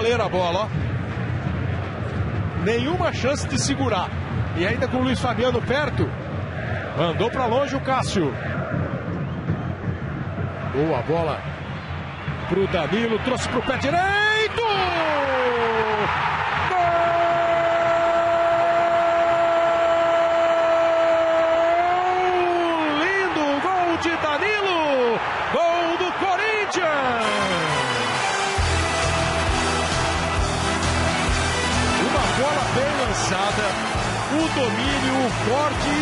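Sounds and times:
commentator shouting: 21.0 - 28.2
music with a beat: 27.5 - 36.0.

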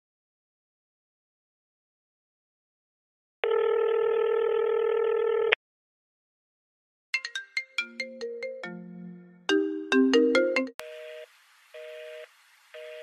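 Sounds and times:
chiming electronic notes: 7.2 - 10.8.

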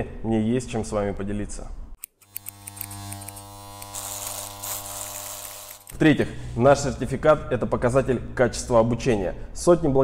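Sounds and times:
electric hair clippers buzzing: 2.0 - 6.0.

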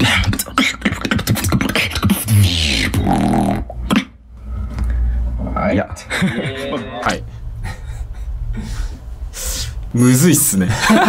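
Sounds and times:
person beatboxing: 0.0 - 4.2
low hum: 4.2 - 9.9.

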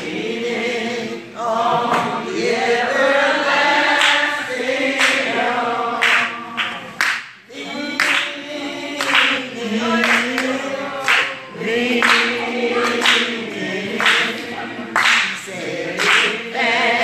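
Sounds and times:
congregation singing: 0.0 - 17.0.

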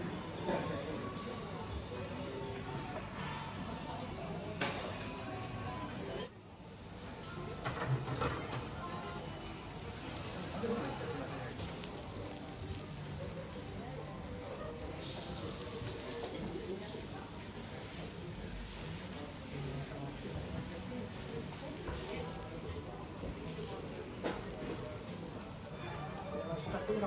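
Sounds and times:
meat and vegetables sizzling: 6.3 - 27.0
metal tongs clinking on griddle: 7.2 - 13.0.

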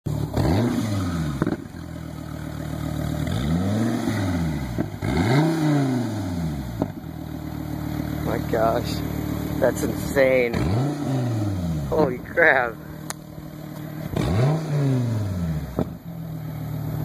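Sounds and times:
car engine idling: 0.1 - 17.0
car engine revving: 0.1 - 17.0.

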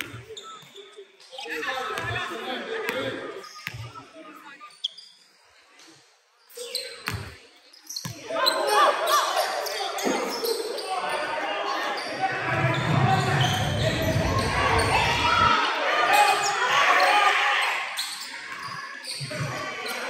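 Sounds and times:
voices shouting in a hall: 8.2 - 20.0.

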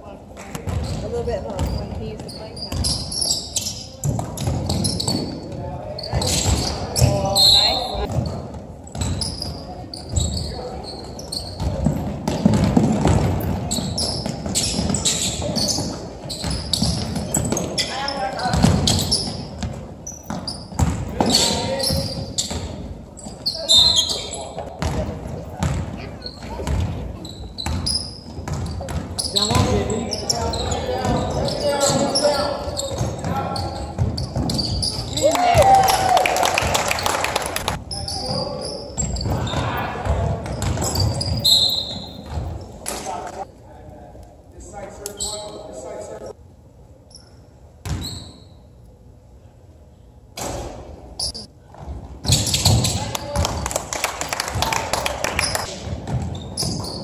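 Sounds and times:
basketball bouncing on hardwood floor: 0.5 - 3.0, 11.6 - 17.7, 18.5 - 21.3, 24.8 - 26.0, 26.6 - 27.0, 27.6 - 29.8, 39.2 - 41.4, 55.8 - 56.9.

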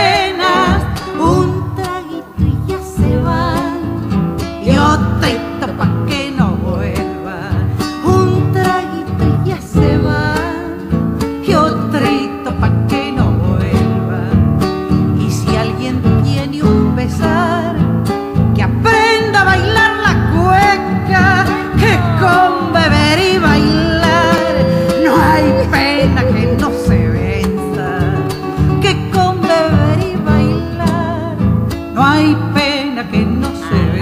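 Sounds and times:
acoustic guitars strummed and plucked: 0.0 - 34.0.

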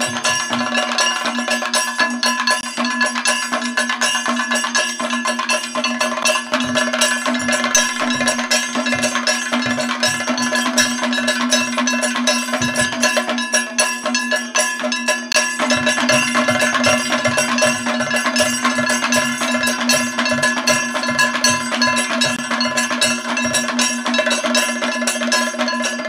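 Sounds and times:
drum strokes: 0.0 - 26.0
ringing small cymbals and gong: 0.0 - 26.0.

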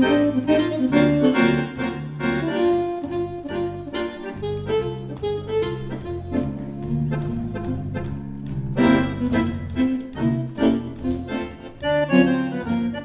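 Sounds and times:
accordion bass notes pulsing: 0.0 - 13.0
accordion melody: 0.0 - 13.0.

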